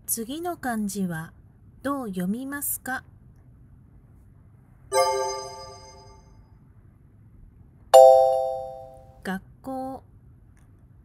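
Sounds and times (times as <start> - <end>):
bright multi-tone chime: 4.9 - 6.3, 8.0 - 9.0.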